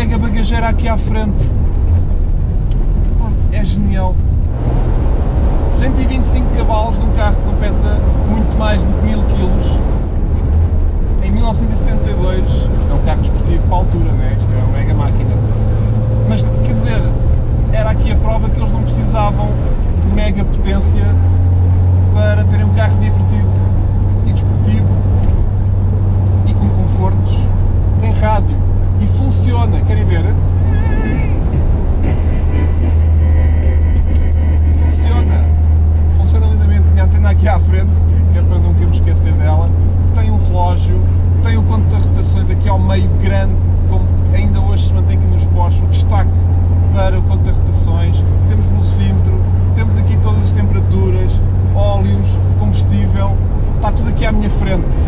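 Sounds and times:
car engine drone: 0:00.0 - 0:55.0.

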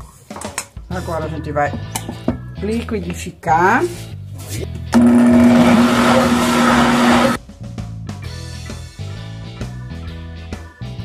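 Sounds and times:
blender whirring: 0:05.0 - 0:07.4.

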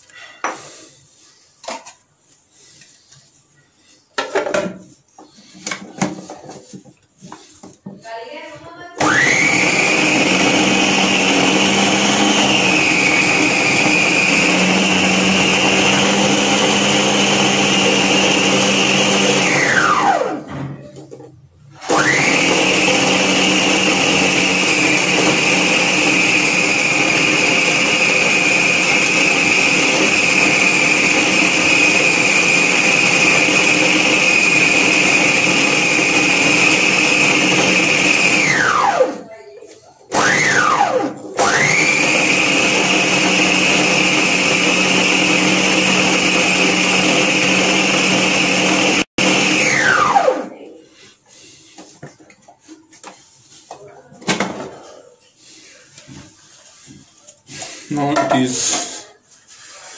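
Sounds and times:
food processor motor whining: 0:09.0 - 0:20.5, 0:21.8 - 0:39.3, 0:40.1 - 0:50.6.

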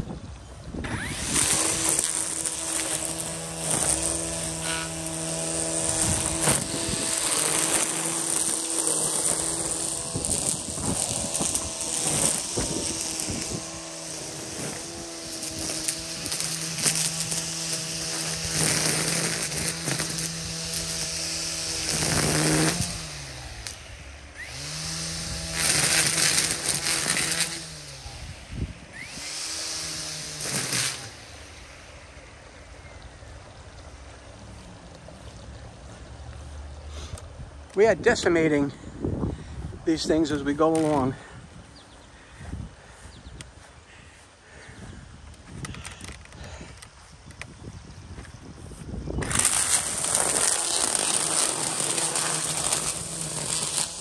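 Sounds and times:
string trimmer motor running: 0:00.7 - 0:38.8, 0:39.4 - 0:54.0
trimmer line slapping weeds: 0:00.8 - 0:33.0, 0:40.0 - 0:41.4, 0:44.6 - 0:54.0.

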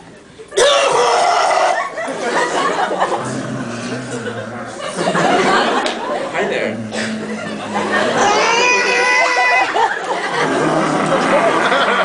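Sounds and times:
rough strained vocal noise: 0:03.0 - 0:05.5, 0:06.4 - 0:09.6, 0:10.3 - 0:11.8.

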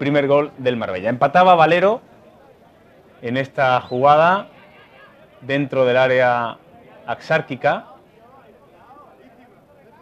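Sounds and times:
distant players calling out: 0:02.1 - 0:05.6.

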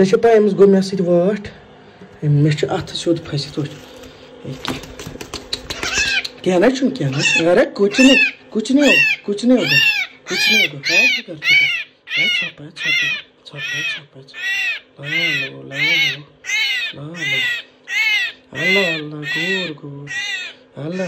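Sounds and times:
myna calling: 0:05.4 - 0:21.0.

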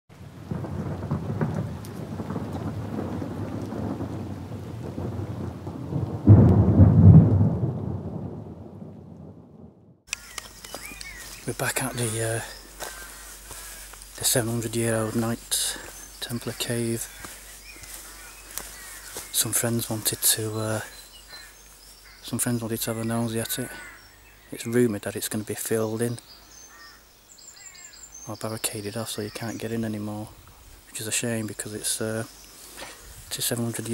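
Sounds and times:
low rumbling hiss: 0:00.2 - 0:33.9
loud deep crash: 0:06.2 - 0:09.8
high thin bird calls: 0:10.1 - 0:13.9, 0:15.1 - 0:19.4, 0:26.2 - 0:28.4.

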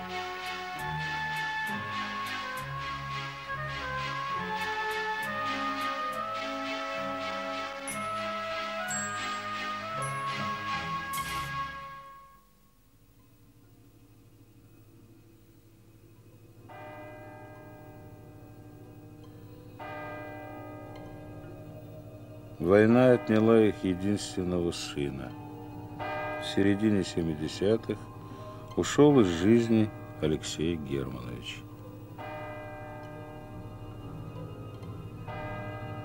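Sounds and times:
bell tolling: 0:05.4 - 0:11.6, 0:16.7 - 0:36.0
bell ringing: 0:05.7 - 0:11.4
low steady hum: 0:12.0 - 0:36.0.

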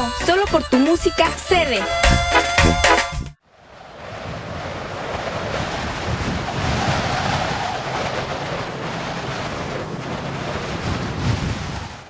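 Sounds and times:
wind-like rushing noise: 0:03.4 - 0:12.0.

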